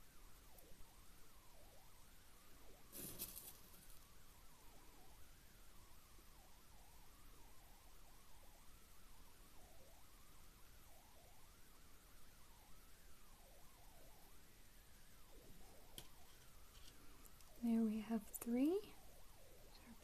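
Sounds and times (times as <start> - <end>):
handling rustle: 2.9 - 4.0.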